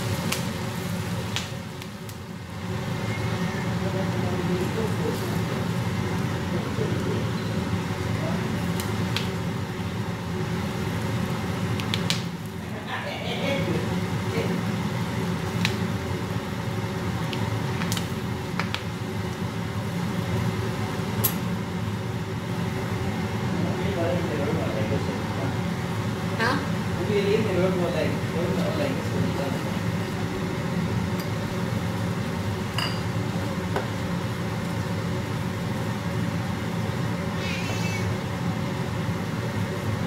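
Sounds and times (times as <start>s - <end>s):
butter sizzling in a frying pan: 0.0s - 40.0s
steady low hum: 0.0s - 40.0s.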